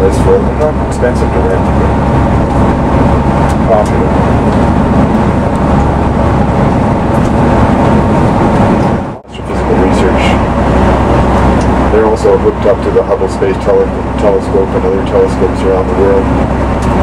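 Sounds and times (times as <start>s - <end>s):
bus engine and tyres droning: 0.0s - 17.0s.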